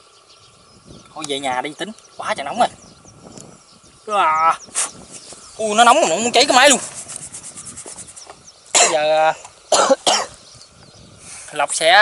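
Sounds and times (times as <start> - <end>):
man's wordless exclamation: 4.0 - 4.6
breathy hiss: 4.5 - 5.6, 11.1 - 11.7.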